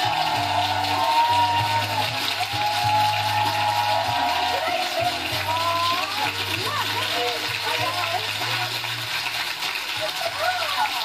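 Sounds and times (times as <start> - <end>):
cheering voices: 0.0 - 8.7
studio audience applauding: 0.0 - 11.0.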